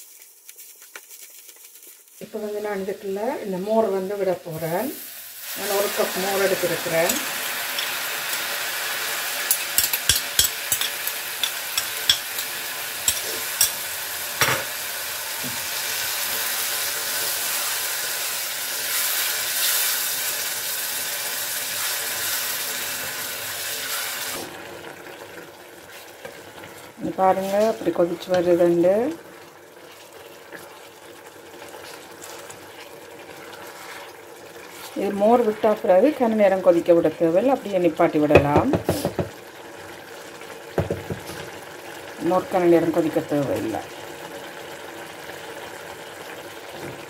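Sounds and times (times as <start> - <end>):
food sizzling in a pot: 0.0 - 47.0
spoon clicking against bowl: 9.5 - 12.5.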